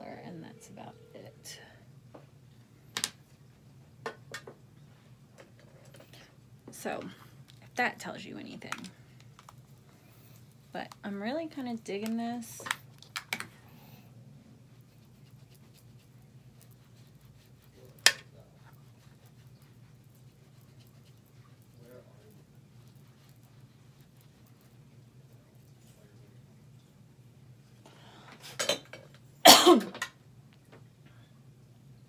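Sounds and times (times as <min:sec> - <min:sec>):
low steady hum: 0:00.0 - 0:32.0
woman coughing: 0:29.4 - 0:30.0.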